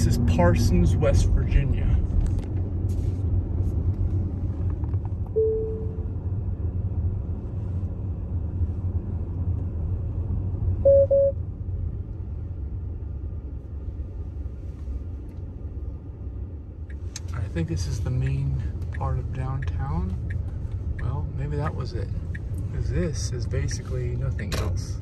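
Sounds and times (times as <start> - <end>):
quick double beep: 10.9 - 11.4.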